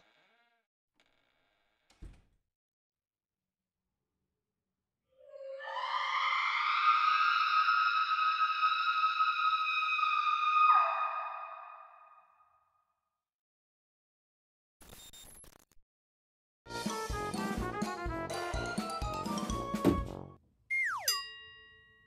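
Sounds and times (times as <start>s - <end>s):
woman screaming: 5.2s - 11.8s.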